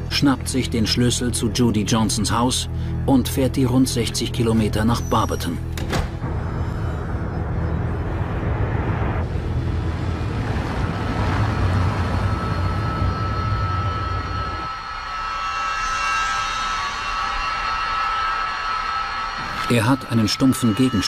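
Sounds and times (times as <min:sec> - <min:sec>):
car engine and road rumble: 0:06.2 - 0:14.7
steady high hum: 0:06.9 - 0:21.0.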